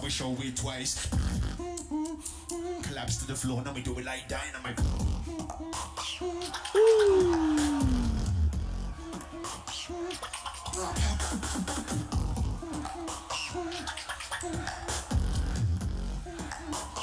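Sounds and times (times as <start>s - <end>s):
beatboxing: 0.0s - 17.0s.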